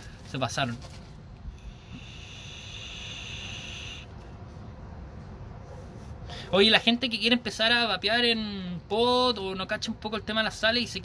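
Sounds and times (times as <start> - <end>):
vape coil hissing and sizzling: 1.6 - 4.1.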